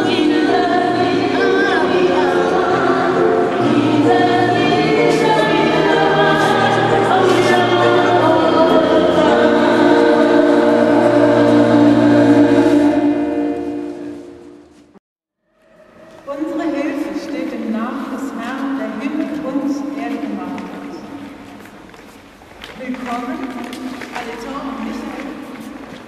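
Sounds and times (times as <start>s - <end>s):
choir singing sustained notes: 0.0s - 14.8s.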